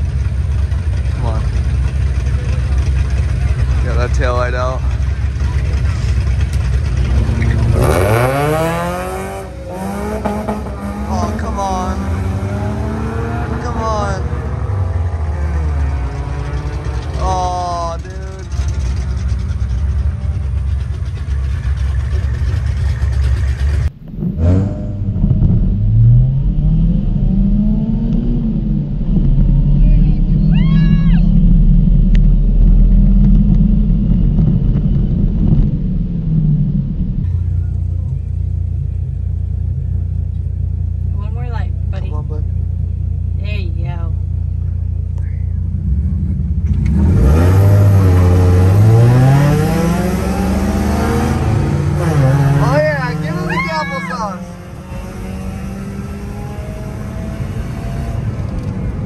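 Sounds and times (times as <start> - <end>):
supercharged car accelerating: 0.0 - 42.6, 44.5 - 59.0
low engine drone: 0.0 - 59.0.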